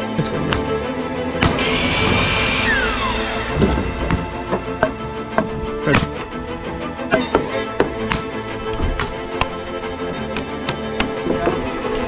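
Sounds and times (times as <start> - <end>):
background music with strings: 0.0 - 12.0.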